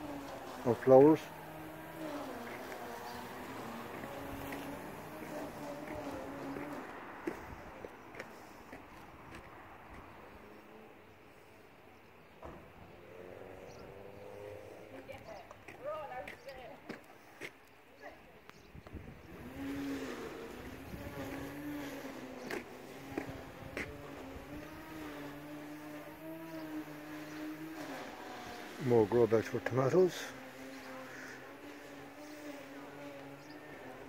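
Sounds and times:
bee buzzing: 0:00.0 - 0:09.7, 0:19.3 - 0:34.0.

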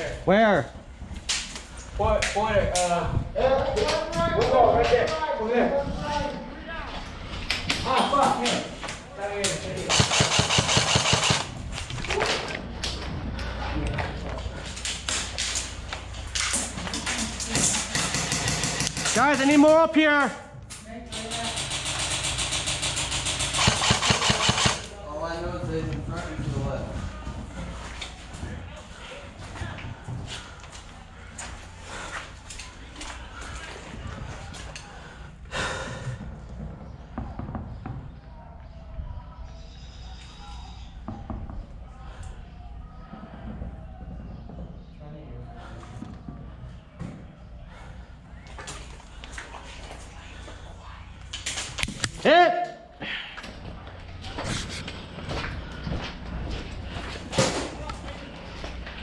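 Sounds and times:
airsoft rifle firing: 0:09.9 - 0:11.6, 0:17.7 - 0:19.6, 0:21.1 - 0:25.0.

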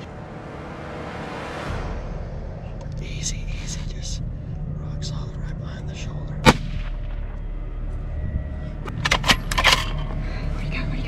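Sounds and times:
steady low rumble: 0:00.0 - 0:11.0
rifle shot crack: 0:06.4 - 0:07.3.

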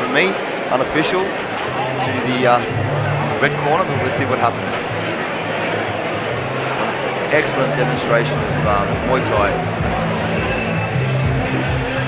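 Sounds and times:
crowd murmur: 0:00.0 - 0:12.0
background music with bass: 0:01.7 - 0:12.0.

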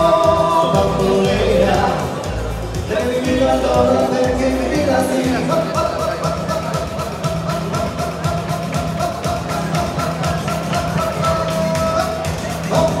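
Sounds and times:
up-tempo music with fast drum beat: 0:00.0 - 0:13.0.

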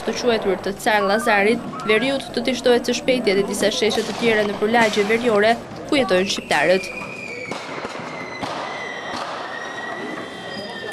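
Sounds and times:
noisy outdoor background: 0:00.0 - 0:10.9
sharp bangs or pops: 0:06.4 - 0:10.4.

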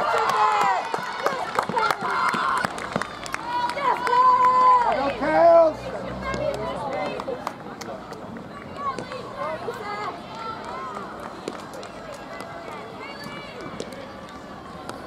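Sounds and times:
chatter of spectators: 0:00.0 - 0:15.0
outdoor background noise: 0:00.0 - 0:15.0.

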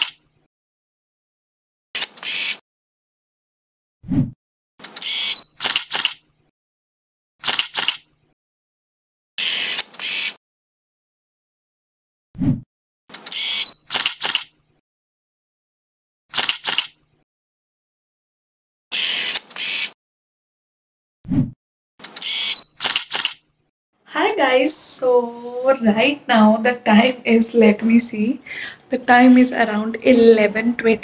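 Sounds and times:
camera shutter clicks: 0:02.0 - 0:02.6, 0:04.9 - 0:06.2, 0:07.4 - 0:08.1, 0:09.4 - 0:10.4, 0:13.1 - 0:14.5, 0:16.3 - 0:17.0, 0:19.0 - 0:19.9, 0:22.0 - 0:23.4.

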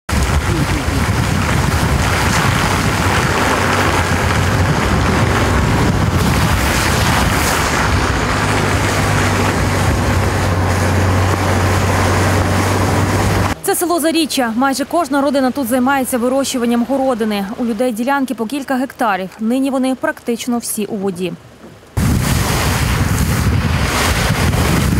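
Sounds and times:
wind on microphone: 0:00.1 - 0:13.6, 0:21.9 - 0:24.9
person speaking: 0:00.4 - 0:01.1, 0:13.6 - 0:21.4.

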